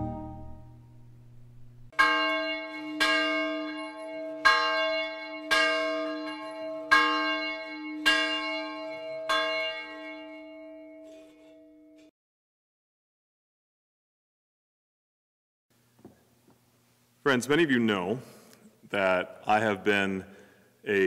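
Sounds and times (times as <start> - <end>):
church bell tolling: 1.9 - 12.1.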